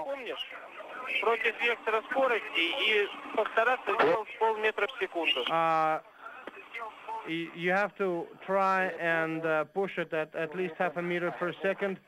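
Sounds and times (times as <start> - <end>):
man speaking over radio: 0.0 - 6.0
faint radio hiss: 0.0 - 12.0.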